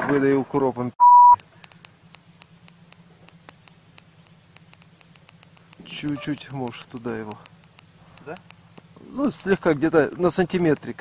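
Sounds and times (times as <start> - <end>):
electronic bleep: 1.0 - 1.4, 6.0 - 6.4
faint ticks: 1.4 - 11.0.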